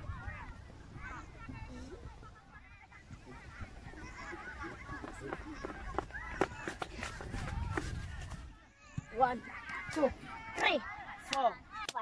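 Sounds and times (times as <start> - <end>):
children shouting: 2.4 - 12.0.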